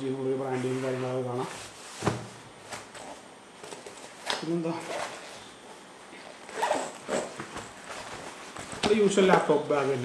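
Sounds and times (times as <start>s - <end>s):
backpack zipper being pulled: 6.4s - 7.5s.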